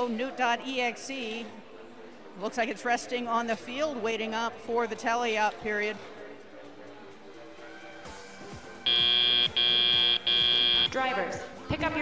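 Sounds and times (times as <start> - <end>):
background music: 0.0 - 12.0
high electronic beep: 8.9 - 10.9.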